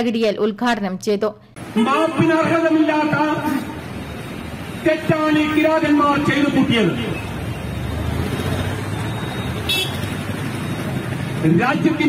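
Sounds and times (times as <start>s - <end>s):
street traffic noise: 0.0s - 12.0s
high-pitched vehicle horn toot: 9.3s - 10.1s.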